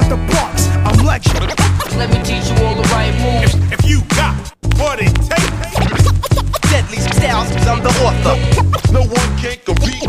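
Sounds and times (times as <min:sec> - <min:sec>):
hip hop beat with heavy bass: 0:00.0 - 0:10.0
turntable scratching: 0:00.0 - 0:10.0.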